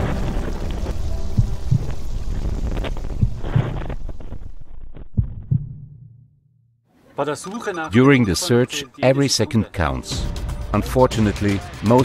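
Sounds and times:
heartbeat sound effect: 1.3 - 4.0, 5.0 - 6.2.

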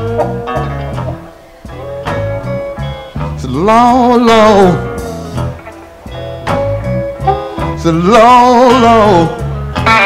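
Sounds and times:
slow blues guitar: 0.0 - 10.0.

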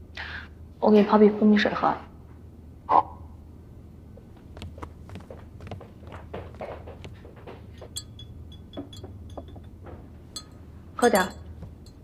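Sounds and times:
soft footsteps: 4.1 - 10.4
spoon clinking against glass: 7.8 - 12.0.

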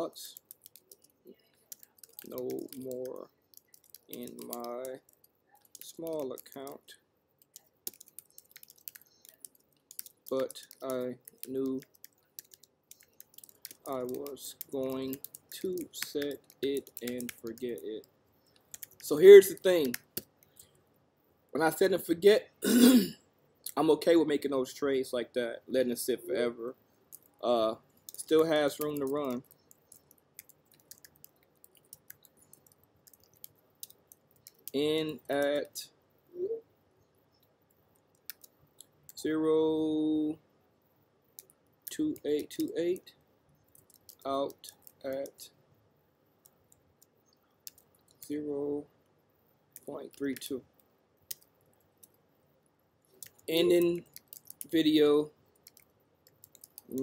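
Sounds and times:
computer keyboard typing: 0.0 - 6.8, 7.4 - 20.6, 28.0 - 35.7, 38.1 - 38.6, 41.4 - 42.8, 43.7 - 45.4, 46.4 - 48.3, 51.3 - 52.2, 53.1 - 55.0, 55.6 - 57.0.

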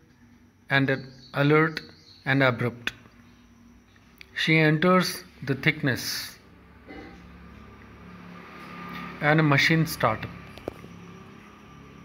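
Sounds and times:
faint low mechanical hum: 0.0 - 12.0.

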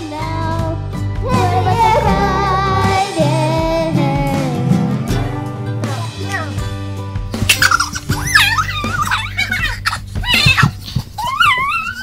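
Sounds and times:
song backing music: 0.0 - 11.2
children squealing and shrieking: 7.5 - 12.0.

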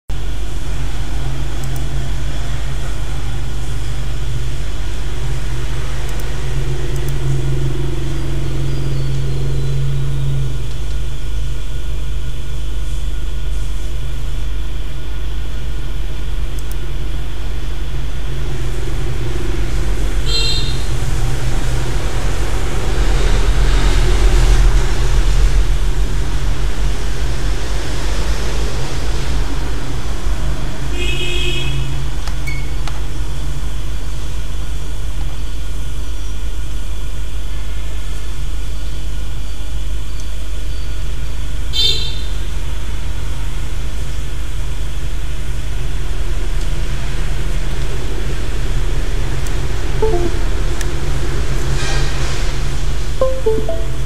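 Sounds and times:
high electronic chirps: 50.0 - 50.6, 53.2 - 54.0.

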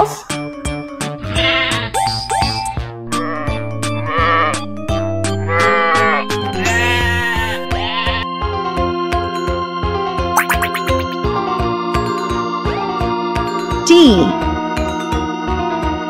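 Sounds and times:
sheep bleating: 1.2 - 1.9, 5.5 - 8.2
light background music: 3.6 - 9.6.

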